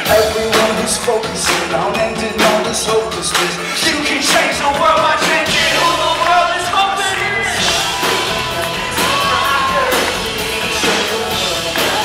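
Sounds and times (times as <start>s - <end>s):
live pop-rock band: 0.0s - 12.0s
person singing: 0.0s - 12.0s.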